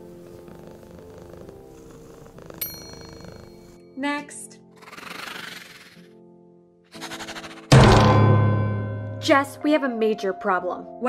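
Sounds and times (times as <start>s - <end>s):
cat purring: 0.0s - 3.8s, 4.6s - 6.1s
soft music bed: 0.0s - 4.1s.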